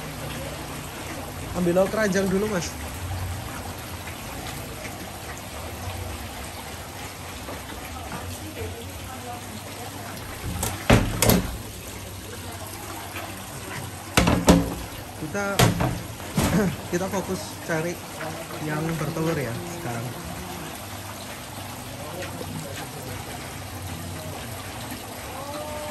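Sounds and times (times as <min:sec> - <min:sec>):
trickle of running water: 0:00.0 - 0:25.9.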